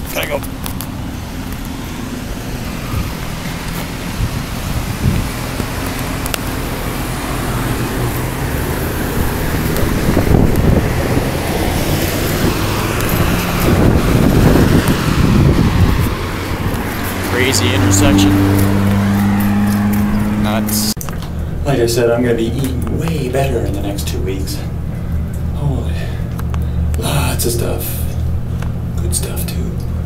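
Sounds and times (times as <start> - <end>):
car engines running: 0.0 - 30.0
cars passing: 0.0 - 30.0.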